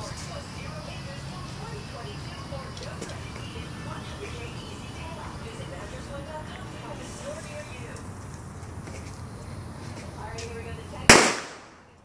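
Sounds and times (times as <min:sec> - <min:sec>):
firecracker bang: 0:11.1 - 0:11.9.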